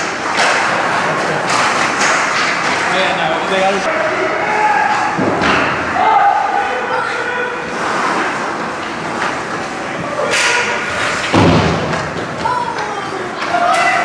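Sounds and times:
voices from the stands: 0:05.9 - 0:08.6
thuds against rink boards: 0:10.3 - 0:12.9.

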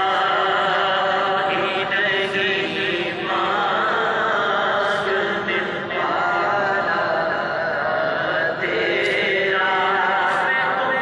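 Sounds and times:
devotional singing: 0:00.0 - 0:11.0.

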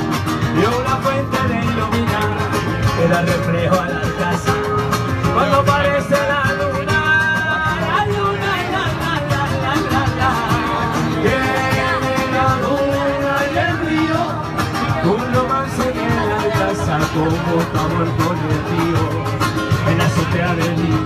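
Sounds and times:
acoustic guitar: 0:00.0 - 0:21.0
men singing: 0:00.0 - 0:21.0.

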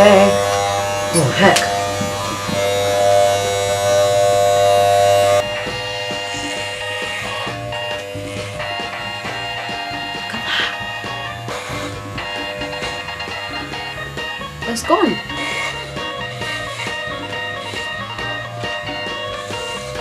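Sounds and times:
electric hair clippers buzzing: 0:00.0 - 0:20.0
music: 0:00.0 - 0:20.0.

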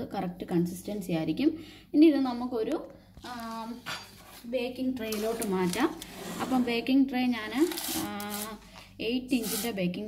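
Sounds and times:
woman talking: 0:00.0 - 0:10.0.

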